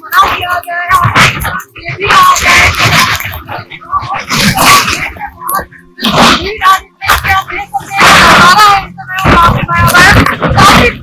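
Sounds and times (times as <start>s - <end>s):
woman speaking into microphone: 0.0s - 11.0s.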